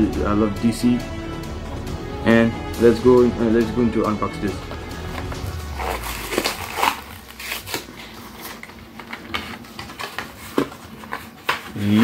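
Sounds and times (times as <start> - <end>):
plastic packaging crackling: 5.6 - 12.0.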